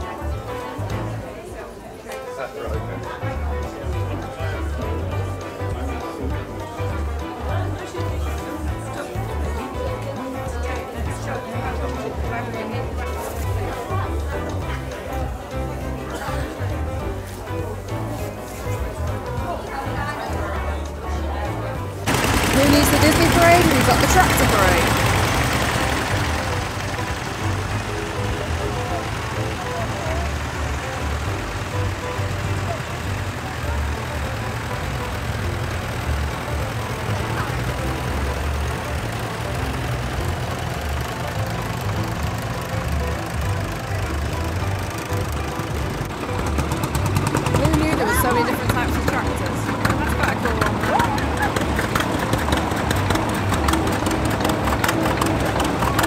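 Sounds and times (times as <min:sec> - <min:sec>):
background music: 0:00.0 - 0:56.0
tractor engines throbbing: 0:21.6 - 0:56.0.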